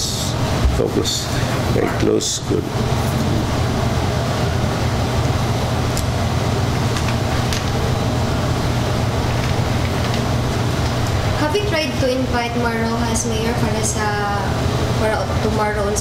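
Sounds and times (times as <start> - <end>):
low rumble with hiss: 0.0 - 16.0.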